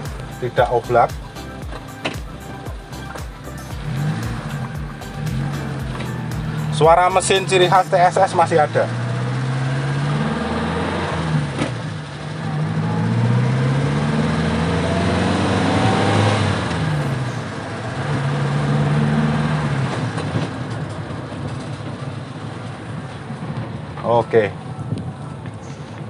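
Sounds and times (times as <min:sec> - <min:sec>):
van engine revving: 0:00.0 - 0:24.0.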